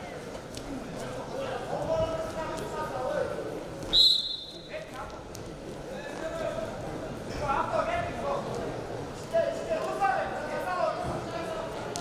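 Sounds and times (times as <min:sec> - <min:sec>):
loud whistle blast: 0:03.9 - 0:04.7.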